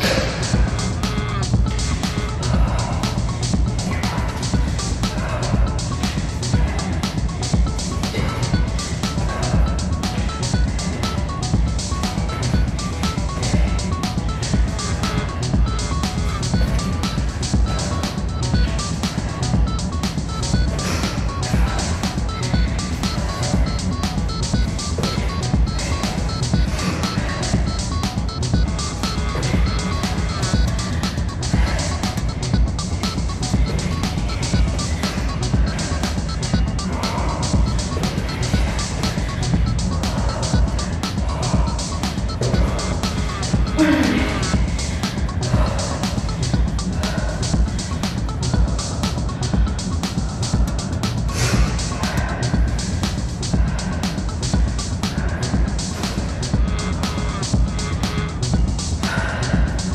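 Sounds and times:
music with fast steady beat: 0.0 - 59.9.

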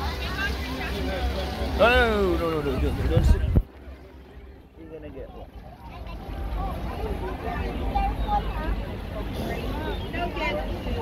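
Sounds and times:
children and adults chattering: 0.0 - 11.0
fountain water running: 0.0 - 11.0.

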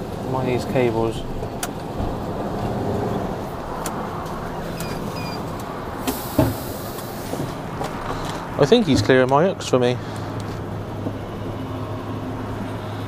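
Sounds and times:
diesel engine idling: 0.0 - 13.0
air hiss: 6.0 - 7.5.

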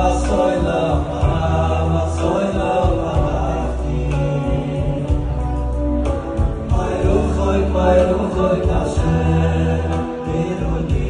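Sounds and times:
electronic keyboard accompaniment: 0.0 - 11.0
male choir singing in harmony: 0.0 - 11.0.

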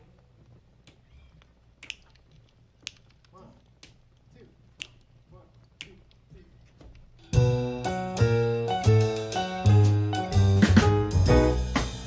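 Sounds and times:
sharp clicks: 0.8 - 6.3
person quietly counting: 3.2 - 6.8.

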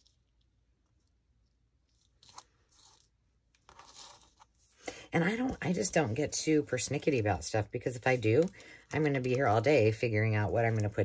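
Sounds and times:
paper crinkling: 0.0 - 4.9.

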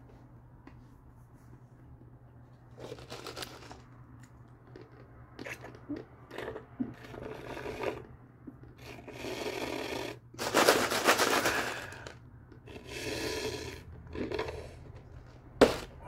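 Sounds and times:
paper cup rattling: 2.7 - 3.9, 10.4 - 12.8
slurping through a straw: 5.4 - 14.9.

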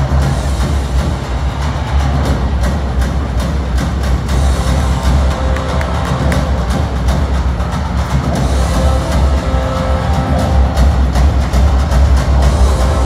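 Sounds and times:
loud music with heavy bass: 0.0 - 13.0.

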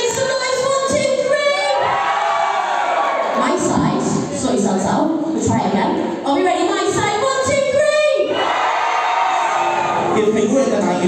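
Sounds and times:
crowd cheering and shouting: 1.1 - 4.3, 7.8 - 10.7.

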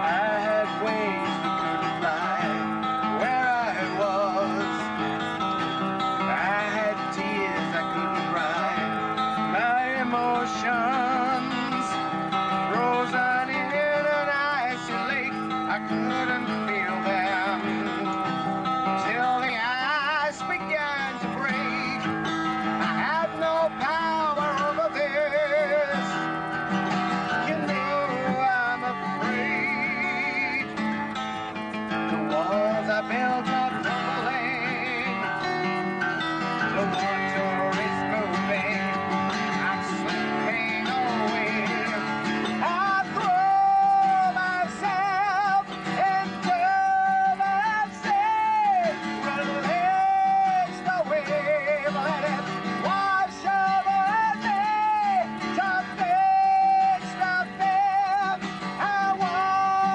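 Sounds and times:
acoustic guitar: 0.0 - 59.9
man singing with vibrato: 0.0 - 59.9.

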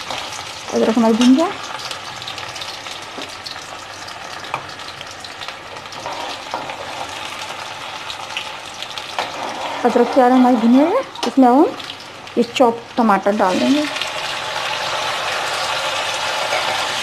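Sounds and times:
onion sizzling in hot oil: 0.0 - 17.0
steel ladle scraping and stirring: 6.0 - 7.1, 9.2 - 10.8.

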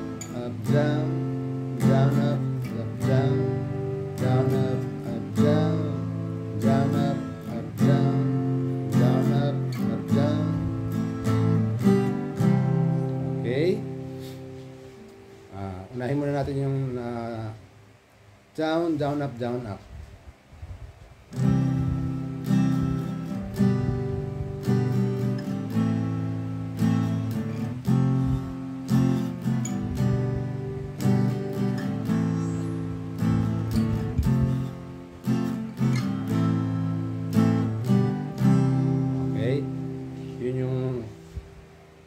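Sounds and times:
acoustic guitar strumming: 0.0 - 17.9, 21.3 - 42.0.

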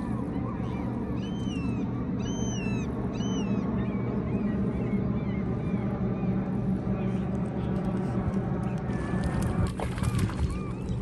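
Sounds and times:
bird calling: 0.0 - 7.2.

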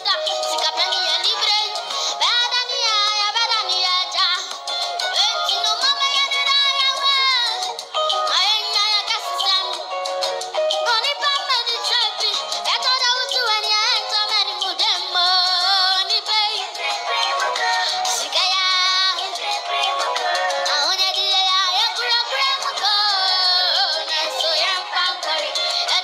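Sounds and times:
boy singing into a microphone: 0.0 - 9.9, 10.7 - 26.0.

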